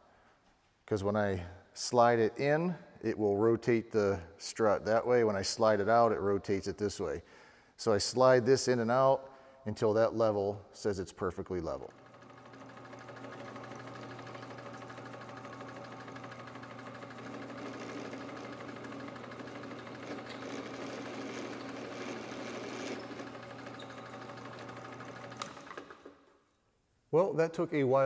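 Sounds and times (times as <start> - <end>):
drill press motor hum: 11.9 - 26.3
drill bit cutting metal: 12.2 - 25.6.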